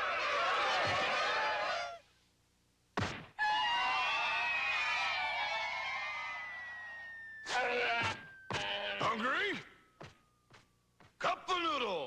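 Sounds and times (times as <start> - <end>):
sharp thump: 3.0 - 3.3.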